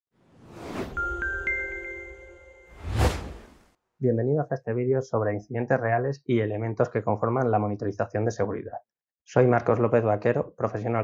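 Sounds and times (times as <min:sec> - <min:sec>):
whoosh: 0:00.3 - 0:01.2, 0:02.7 - 0:03.6
chime notes ringing: 0:01.0 - 0:02.8.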